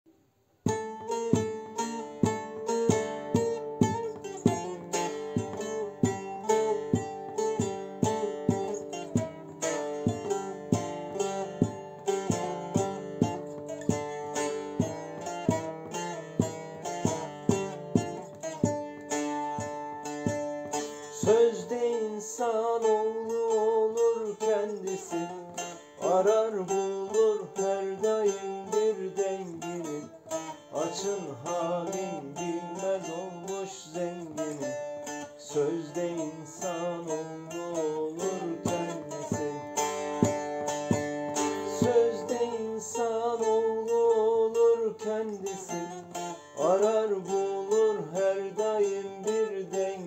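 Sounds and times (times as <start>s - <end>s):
long-necked lute playing: 0.6s - 50.0s.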